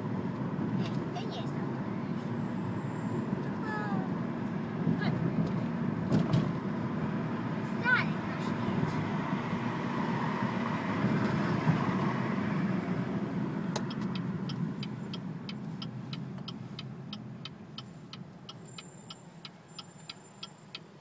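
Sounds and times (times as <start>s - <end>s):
traffic rumble: 0.0s - 21.0s.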